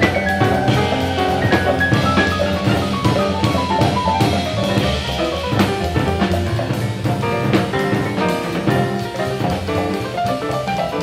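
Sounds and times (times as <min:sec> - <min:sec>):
busy drum kit: 0:00.0 - 0:11.0
jazz ensemble playing: 0:00.0 - 0:11.0.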